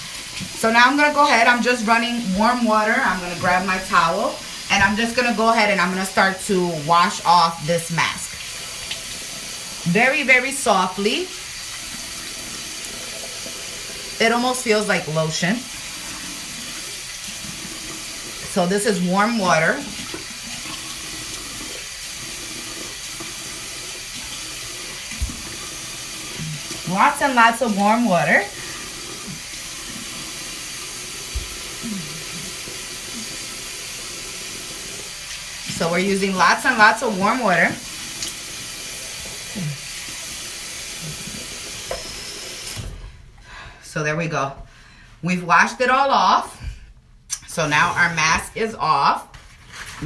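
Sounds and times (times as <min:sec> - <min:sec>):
water running from a tap: 0:00.0 - 0:42.9.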